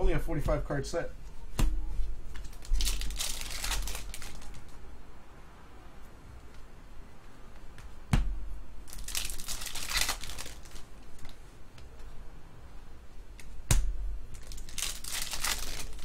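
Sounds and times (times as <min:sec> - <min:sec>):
wrapper crinkling and tearing: 0:02.4 - 0:04.7, 0:08.9 - 0:11.4, 0:14.3 - 0:16.0.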